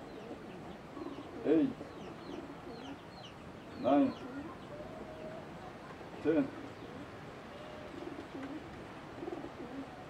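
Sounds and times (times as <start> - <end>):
dove cooing: 0.0 - 3.1, 3.8 - 10.0.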